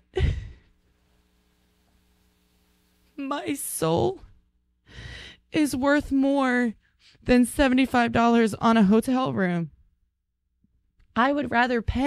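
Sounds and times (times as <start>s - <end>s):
woman laughing breathily: 0.0s - 0.8s
faint steady hum: 0.0s - 6.0s.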